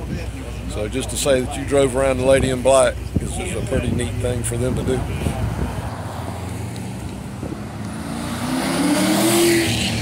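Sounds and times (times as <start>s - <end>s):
car accelerating past: 5.2s - 10.0s.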